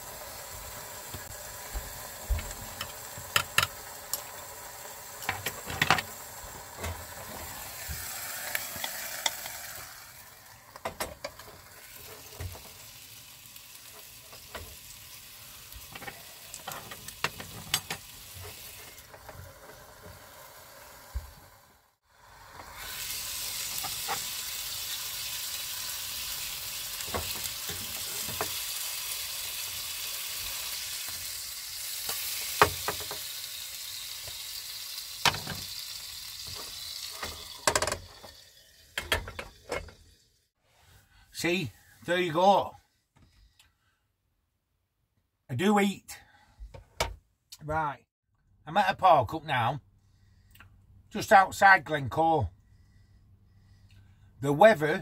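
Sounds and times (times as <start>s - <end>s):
meat sizzling in a pan: 0.0s - 40.4s.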